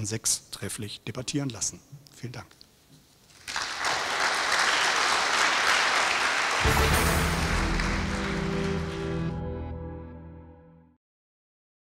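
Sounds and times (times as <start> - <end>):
audience applause: 3.4 - 9.6
outro music with deep bass: 6.6 - 10.9.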